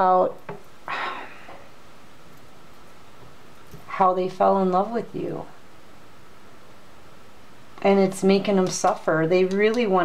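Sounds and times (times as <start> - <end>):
woman speaking: 0.0 - 0.4, 3.9 - 5.6, 7.8 - 10.0
faint room tone hiss: 0.0 - 10.0.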